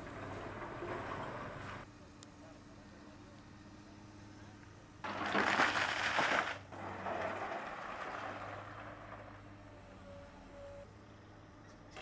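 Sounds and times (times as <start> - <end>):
stones pouring into trench: 5.0 - 9.6.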